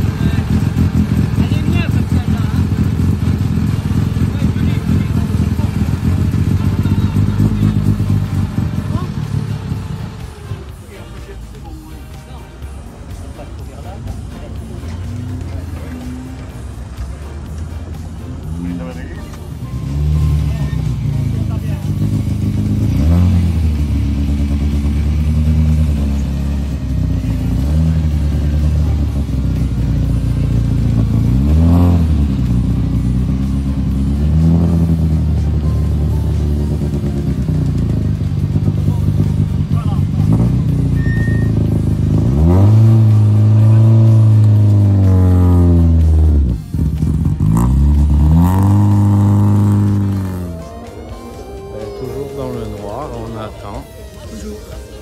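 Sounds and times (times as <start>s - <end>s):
car engine revving: 0.0s - 12.1s, 12.7s - 55.0s.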